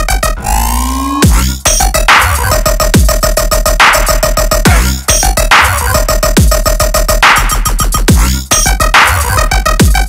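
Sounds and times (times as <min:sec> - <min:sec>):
dubstep music: 0:00.0 - 0:10.0.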